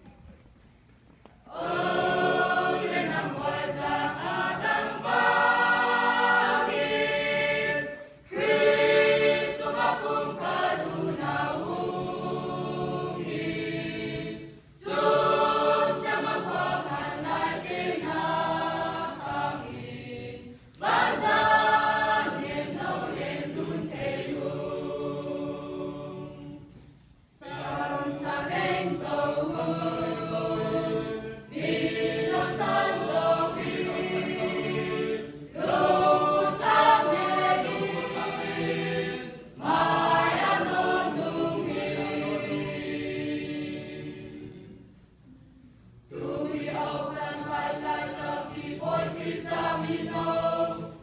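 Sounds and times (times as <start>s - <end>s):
choir singing a hymn: 1.5s - 51.0s.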